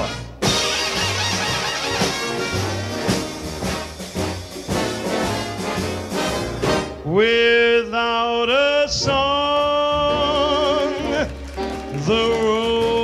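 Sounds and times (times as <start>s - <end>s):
swing band music with brass: 0.0s - 13.0s.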